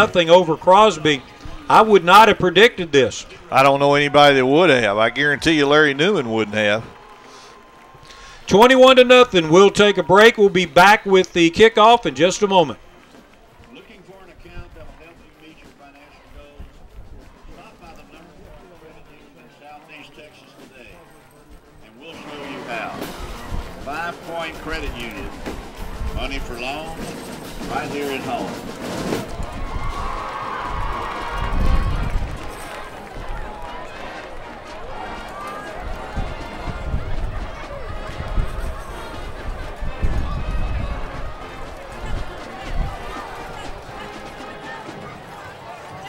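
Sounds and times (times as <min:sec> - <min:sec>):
music over stadium speakers: 0:00.0 - 0:46.0.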